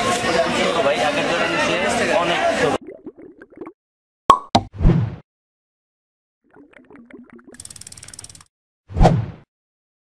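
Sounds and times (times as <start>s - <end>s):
rapid ratchet-like clicking: 7.6s - 8.5s.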